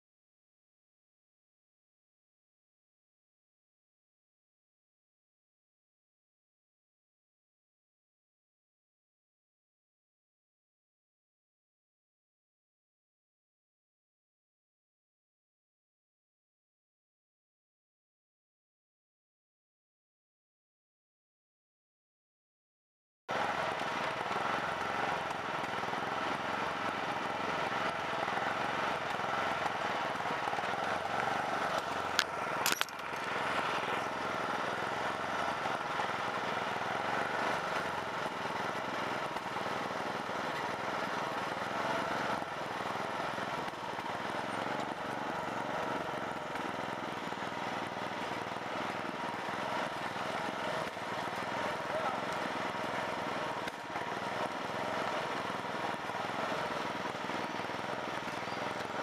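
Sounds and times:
riding lawn mower engine running: 0:23.3 - 0:59.0.

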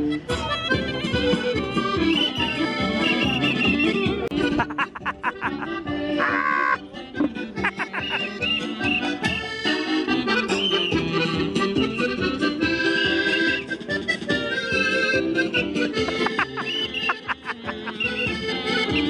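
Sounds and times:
accordion music: 0:00.0 - 0:19.0.

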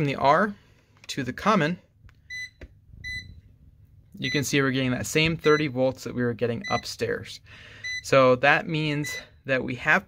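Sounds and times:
multimeter beeps: 0:02.3 - 0:03.5, 0:04.2 - 0:04.6, 0:05.4 - 0:05.8, 0:06.6 - 0:07.1, 0:07.8 - 0:08.2, 0:08.9 - 0:09.4.

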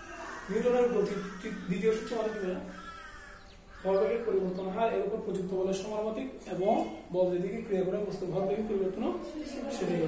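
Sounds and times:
man speaking: 0:00.3 - 0:02.8, 0:03.8 - 0:10.0.

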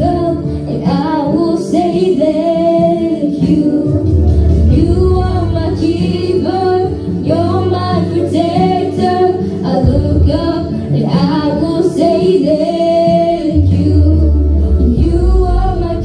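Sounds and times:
girl singing into a microphone: 0:00.0 - 0:16.0
sustained instrumental accompaniment: 0:00.0 - 0:16.0.

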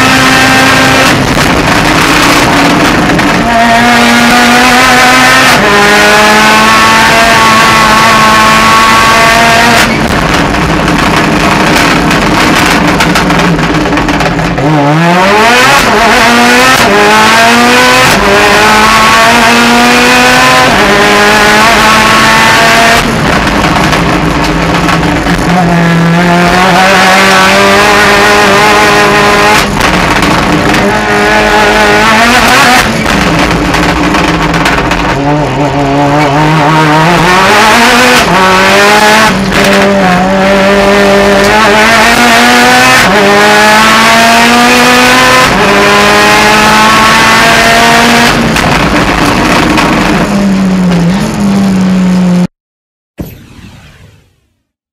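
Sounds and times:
race car engine revving: 0:00.0 - 0:52.5.

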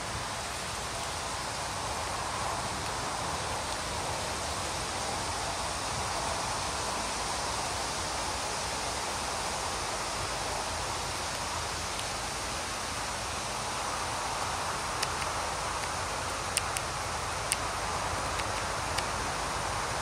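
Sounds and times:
foliage rustling in breeze: 0:00.0 - 0:20.0.

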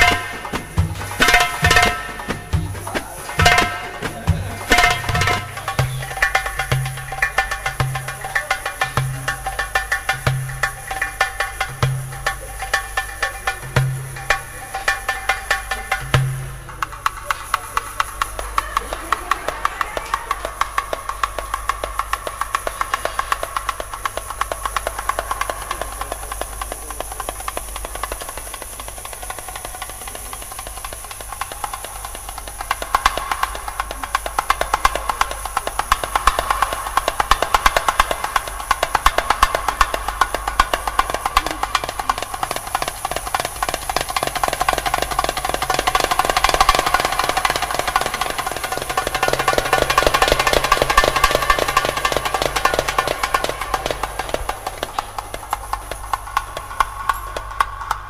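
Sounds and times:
fast dense drumming: 0:00.0 - 0:58.0.

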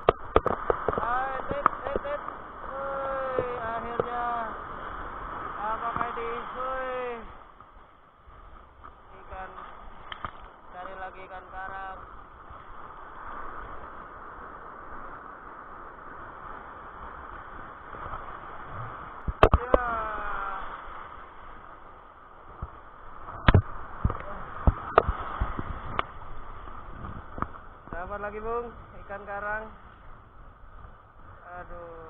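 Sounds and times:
surf breaking and foaming: 0:00.0 - 0:32.0.

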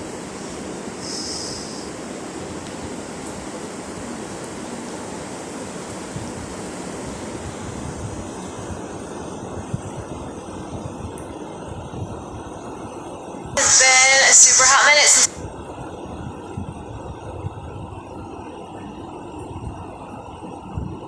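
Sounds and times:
low background noise: 0:13.6 - 0:15.4
woman talking loudly: 0:13.6 - 0:15.4.

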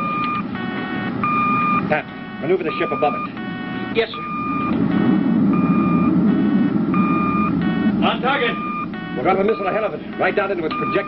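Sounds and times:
electronic beeps: 0:00.0 - 0:11.0
low rocket engine rumble: 0:00.4 - 0:11.0.

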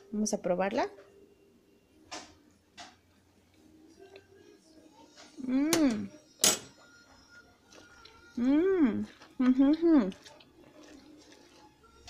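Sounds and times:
person humming mmm: 0:05.3 - 0:06.2, 0:07.8 - 0:10.4.

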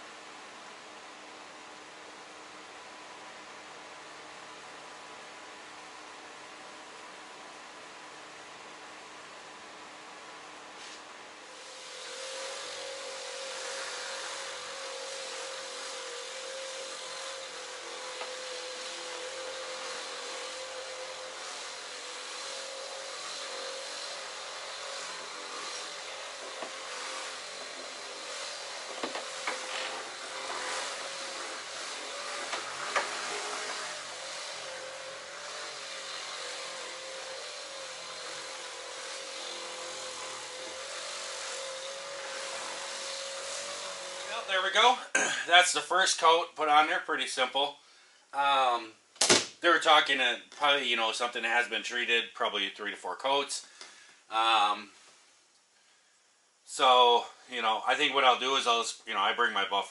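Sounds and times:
electric buffer whining: 0:10.8 - 0:45.4
pad rubbing on glass: 0:11.8 - 0:37.4.

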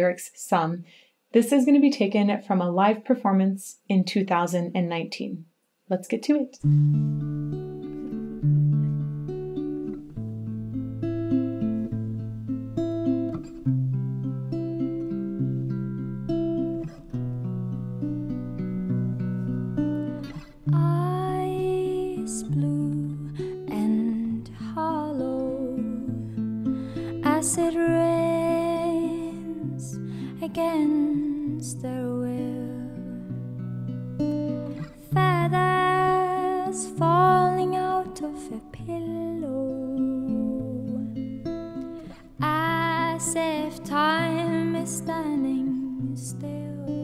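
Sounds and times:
picked guitar: 0:06.6 - 0:47.0
woman singing: 0:20.7 - 0:33.4, 0:35.0 - 0:41.4, 0:42.0 - 0:47.0.

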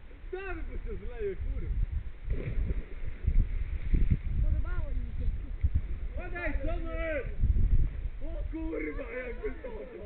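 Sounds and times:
people calling out: 0:08.7 - 0:10.0.

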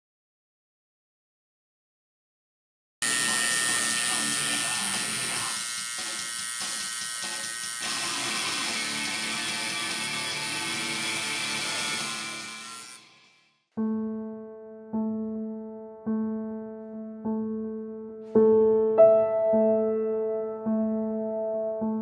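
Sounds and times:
tattoo machine buzzing: 0:03.0 - 0:13.4.

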